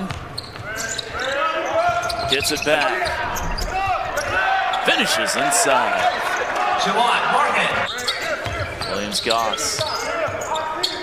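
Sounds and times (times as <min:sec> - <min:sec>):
voices in echoing hall: 0:00.0 - 0:11.0.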